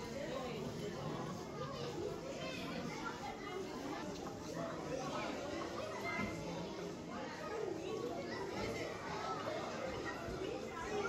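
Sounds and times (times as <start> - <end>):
children's voices: 0.0 - 11.0
indistinct chatter of people: 0.0 - 11.0.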